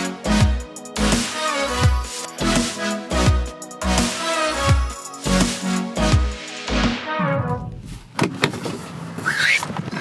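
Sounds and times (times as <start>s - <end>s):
car door opening: 7.4s - 10.0s
car door latch clicking: 8.1s - 8.8s.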